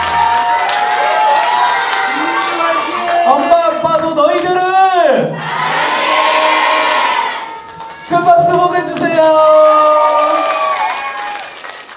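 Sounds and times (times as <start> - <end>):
children shouting and cheering: 0.0 - 3.8, 4.6 - 8.4, 9.6 - 11.9.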